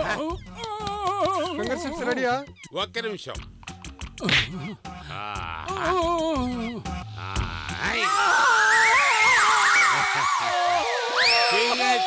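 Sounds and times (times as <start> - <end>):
comic film music: 3.6 - 11.4
man screaming in pain: 5.1 - 6.4.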